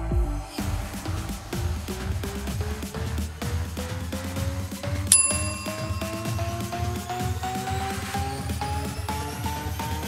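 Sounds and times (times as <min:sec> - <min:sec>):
electronic dance music: 0:00.0 - 0:10.0
interval timer ding: 0:05.1 - 0:08.8.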